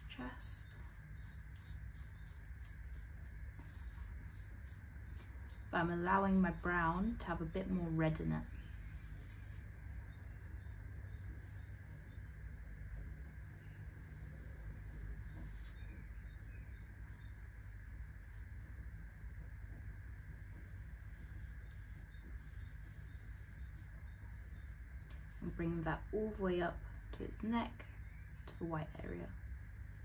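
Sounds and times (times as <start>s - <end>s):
steady low hum: 0.0s - 30.0s.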